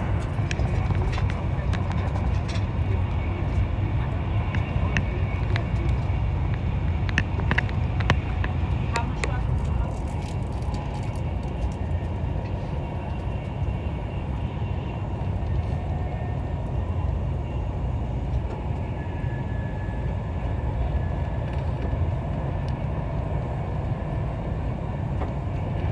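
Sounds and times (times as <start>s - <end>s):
faint steady whines: 0.0s - 25.9s
train wheels rumbling on rail: 0.0s - 25.9s.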